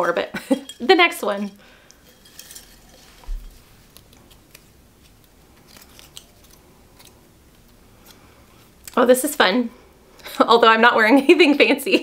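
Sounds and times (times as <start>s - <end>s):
paper slips rustling in glass jar: 0.4s - 3.9s
paper crinkles: 2.6s - 9.2s.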